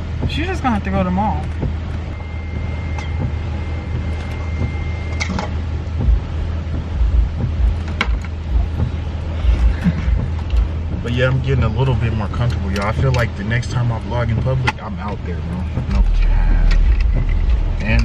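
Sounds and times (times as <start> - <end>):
low thumps: 0.0 - 12.1, 15.6 - 18.0
car engine hum inside cabin: 0.0 - 18.0.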